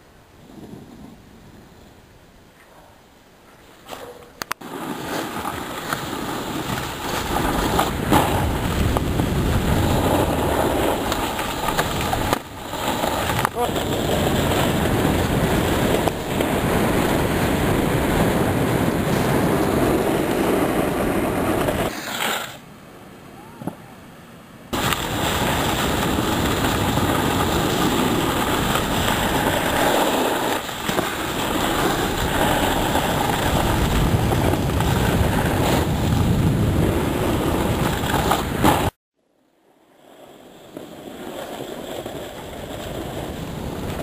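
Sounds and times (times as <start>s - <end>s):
snowboard scraping on hard snow: 4.6s - 22.6s, 24.7s - 39.0s, 39.9s - 44.0s
wind buffeting microphone: 7.2s - 21.9s, 24.7s - 39.0s.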